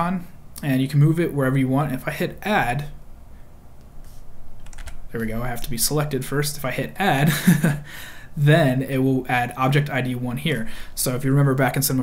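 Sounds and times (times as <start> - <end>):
computer mouse clicking: 3.8 - 5.0.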